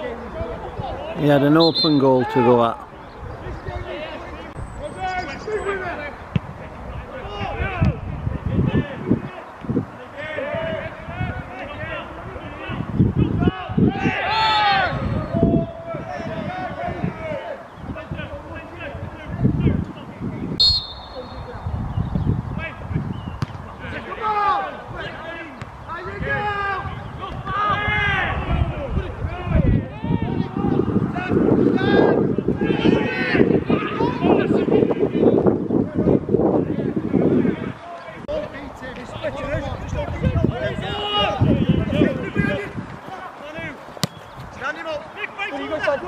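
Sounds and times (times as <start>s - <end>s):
players calling out: 0.0s - 8.0s, 20.6s - 21.8s, 37.6s - 46.0s
players shouting calls: 0.0s - 19.4s, 20.6s - 21.8s, 22.5s - 35.4s, 36.6s - 46.0s
wind rumble on microphone: 2.9s - 20.6s, 21.2s - 24.1s, 24.8s - 44.7s
ball being kicked: 43.9s - 44.6s.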